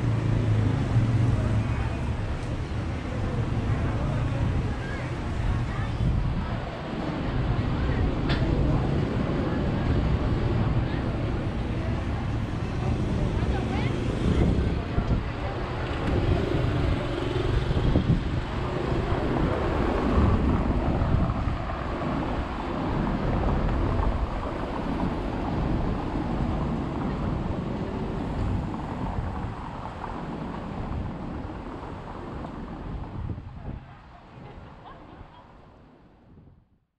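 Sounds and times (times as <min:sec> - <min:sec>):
voices of passers-by: 0:00.0 - 0:36.6
passing traffic: 0:00.0 - 0:36.7
wind buffeting microphone: 0:00.0 - 0:36.8.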